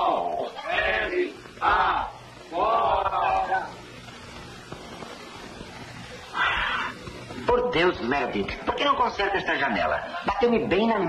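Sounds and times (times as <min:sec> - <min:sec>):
dialogue: 0:00.0 - 0:11.0
film soundtrack hiss and hum: 0:00.0 - 0:11.0.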